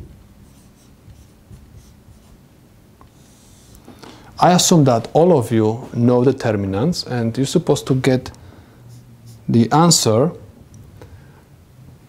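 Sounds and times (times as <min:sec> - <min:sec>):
marker pen scratching on whiteboard: 0:00.4 - 0:02.4, 0:08.9 - 0:09.6.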